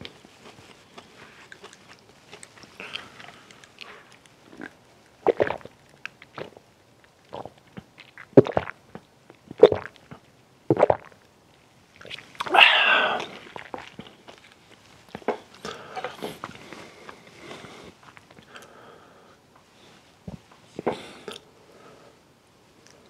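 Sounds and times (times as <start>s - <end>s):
swallowing soda: 2.7s - 6.7s, 7.3s - 11.2s, 12.0s - 14.4s, 20.3s - 21.5s.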